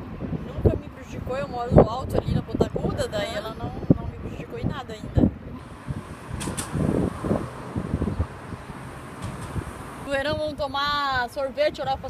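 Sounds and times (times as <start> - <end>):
background hum: 0.0 - 12.0.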